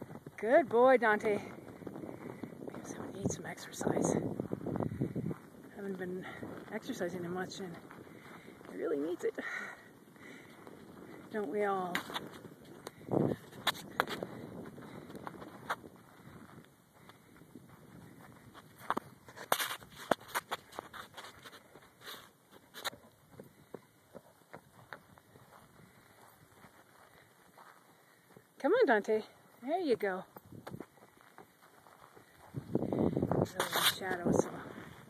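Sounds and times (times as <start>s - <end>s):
footfalls on dry ground: 0.0s - 35.0s.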